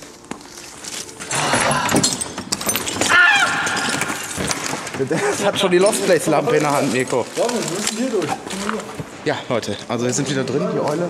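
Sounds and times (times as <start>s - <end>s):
leafy branches rustling: 2.8s - 9.6s.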